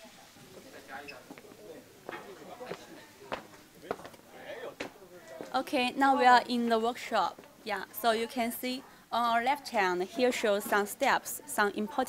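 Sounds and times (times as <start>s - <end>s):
footsteps: 0.4s - 4.2s, 4.8s - 5.6s.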